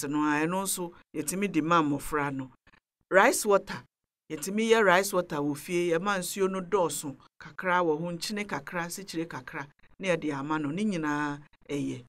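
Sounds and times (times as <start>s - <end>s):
person talking: 0.0s - 12.0s.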